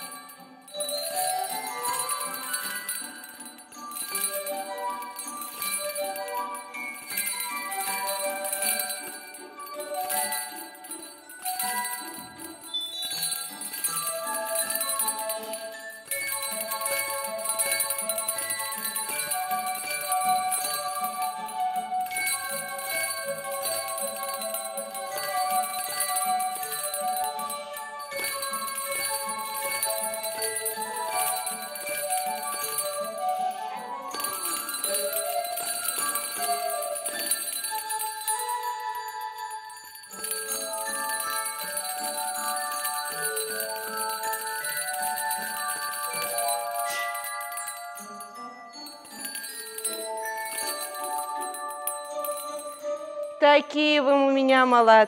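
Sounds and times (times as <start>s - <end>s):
small metal handbells ringing: 0.0s - 53.9s
music with stepping melody: 0.0s - 55.0s.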